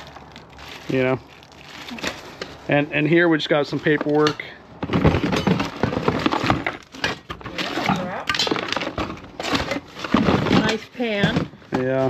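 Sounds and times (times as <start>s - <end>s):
rummaging through papers in box: 4.9s - 12.0s.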